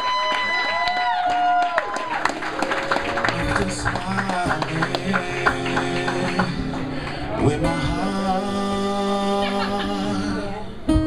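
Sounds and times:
acoustic guitar: 2.0s - 11.0s.

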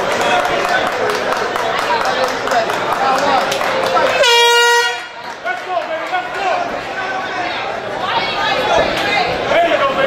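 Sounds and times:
crowd chatter: 0.0s - 10.0s
horn blast: 4.1s - 5.2s.

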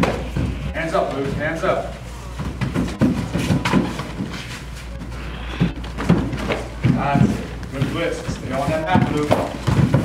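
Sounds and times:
footwork scuffing on mat: 0.0s - 10.0s
low background hum: 0.0s - 10.0s.

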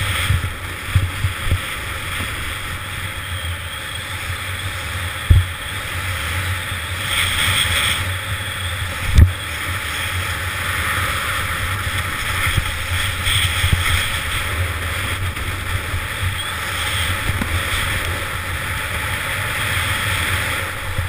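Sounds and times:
skis hissing on packed snow: 0.0s - 21.0s
wind rushing over camera: 0.0s - 21.0s.

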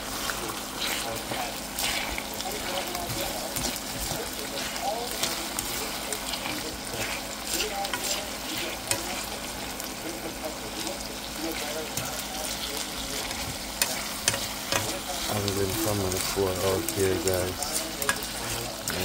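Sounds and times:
fish sizzling in a frying pan: 0.0s - 19.0s
fork scraping a pan: 0.1s - 9.9s, 10.7s - 19.0s.

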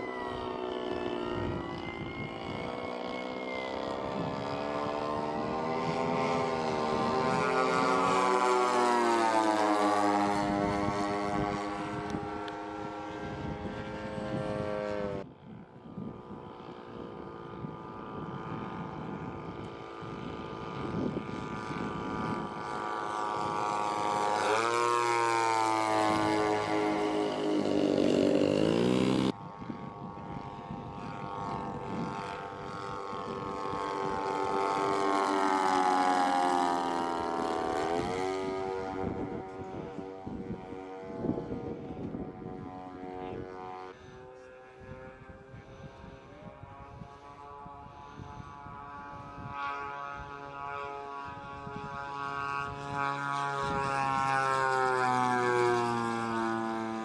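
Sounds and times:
model plane engines droning: 0.0s - 57.0s.

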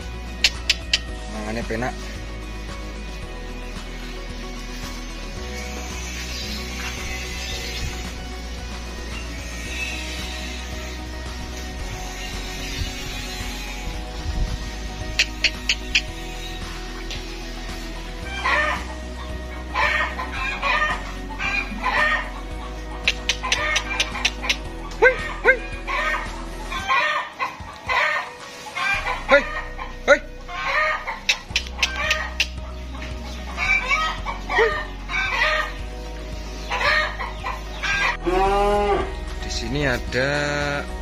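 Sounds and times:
background music: 0.0s - 41.0s.

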